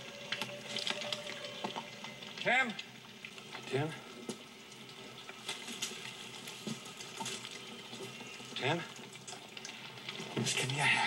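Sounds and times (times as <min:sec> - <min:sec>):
scattered drips and ticks: 0:00.0 - 0:11.0.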